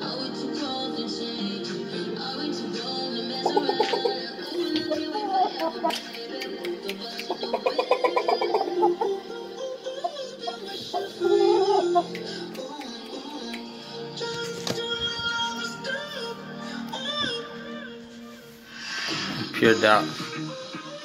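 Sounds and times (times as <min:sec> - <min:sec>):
music with singing voice: 0:00.0 - 0:21.0.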